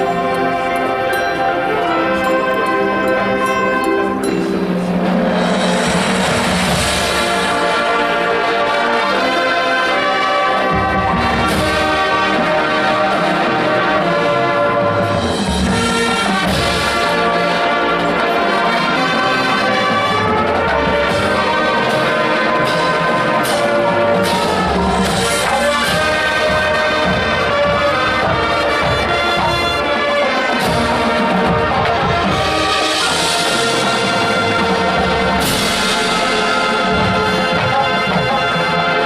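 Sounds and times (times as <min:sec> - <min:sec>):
brass sustained chords: 0:00.0 - 0:39.0
keyboard percussion: 0:00.0 - 0:39.0.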